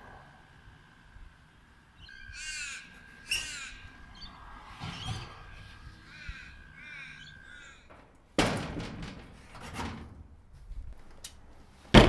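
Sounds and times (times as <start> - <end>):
crow cawing: 2.0 - 4.6, 5.3 - 8.0.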